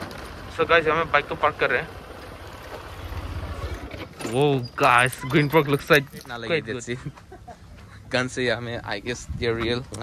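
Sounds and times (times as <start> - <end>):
motorcycle engine rumbling: 0.0 - 8.2.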